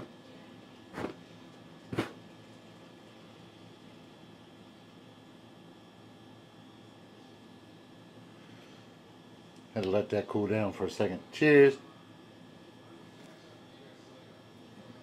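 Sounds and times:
puff of breath blowing out flame: 1.0s - 1.2s, 1.9s - 2.2s.

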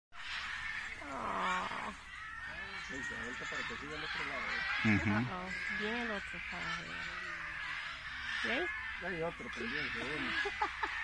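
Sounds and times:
monkey vocal call: 0.2s - 11.0s.

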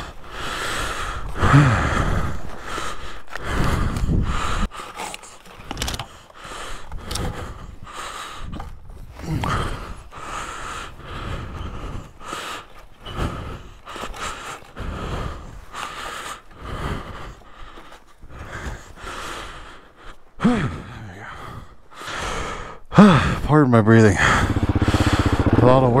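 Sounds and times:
man breathing hard: 0.0s - 23.5s, 24.1s - 26.0s
man grunting: 20.4s - 21.3s.

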